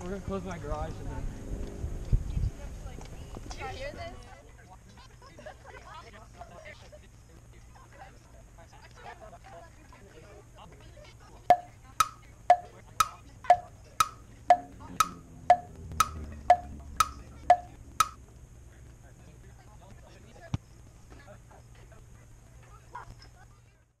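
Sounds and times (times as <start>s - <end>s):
wood-block-like tick-tock clicks: 11.5s - 18.2s.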